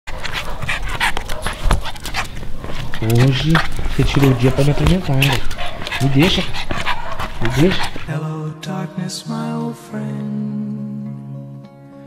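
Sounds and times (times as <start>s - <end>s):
dog panting: 0.1s - 8.1s.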